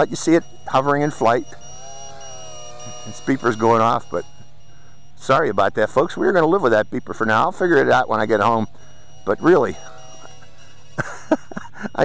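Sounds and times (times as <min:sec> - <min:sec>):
quadcopter motors humming: 0:00.0 - 0:12.0
thin high beeper tone: 0:00.0 - 0:12.0.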